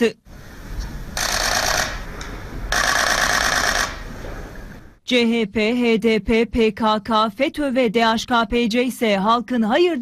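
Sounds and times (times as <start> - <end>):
camera shutters clicking: 1.2 - 4.0.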